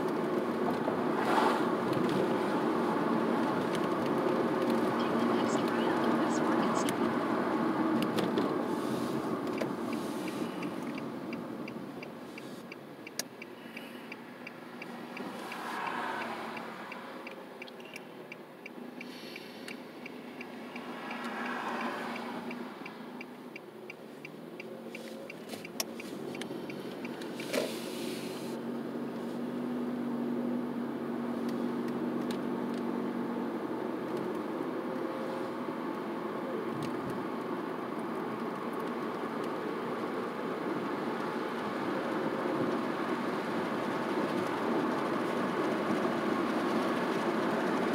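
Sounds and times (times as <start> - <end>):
road noise: 0.0 - 47.9
turn signal ticking: 1.8 - 27.5.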